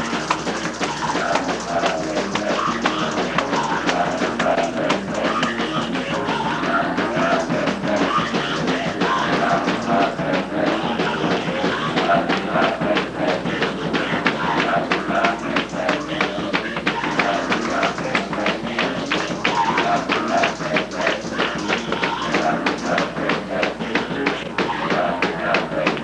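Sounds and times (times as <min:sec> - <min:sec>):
fast hand clapping: 0:00.0 - 0:26.0
voices singing through microphone: 0:00.0 - 0:26.0.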